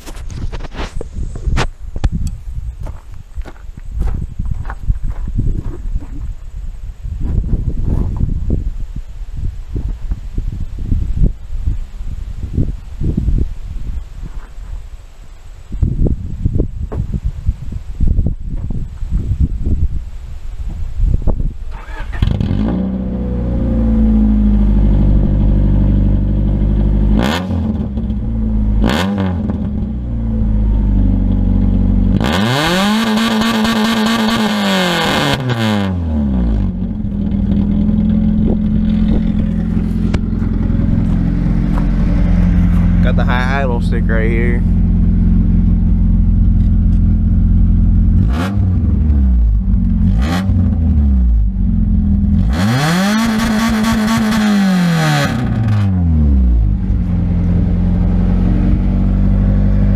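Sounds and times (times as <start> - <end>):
wind buffeting microphone: 0.0 - 15.0, 15.6 - 22.6, 36.7 - 52.3
car engine starting: 21.6 - 59.9
engine revving: 21.7 - 59.9
engine throttle blips: 21.7 - 59.9
car engine idling: 29.5 - 32.3, 36.7 - 52.5, 55.4 - 59.9.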